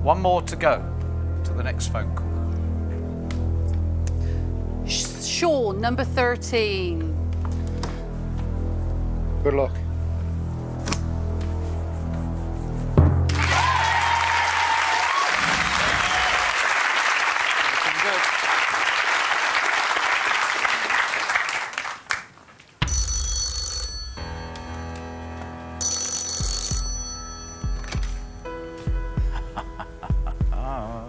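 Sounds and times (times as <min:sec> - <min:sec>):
background music: 0:00.0 - 0:16.4, 0:22.8 - 0:31.0
audience cheering and applauding: 0:13.3 - 0:22.4
telephone ringing: 0:22.8 - 0:25.0, 0:25.8 - 0:28.6.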